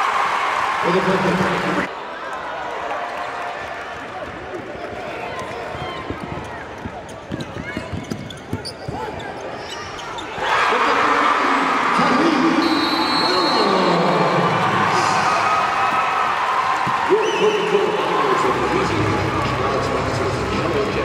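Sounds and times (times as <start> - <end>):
crowd shouting and cheering: 0.0 - 21.0
basketball dribbling: 6.3 - 9.1
sneaker squeaks on hardwood: 7.0 - 10.4.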